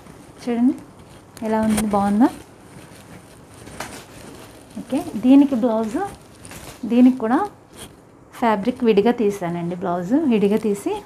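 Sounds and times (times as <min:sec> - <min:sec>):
fabric rustling: 0:00.0 - 0:11.0.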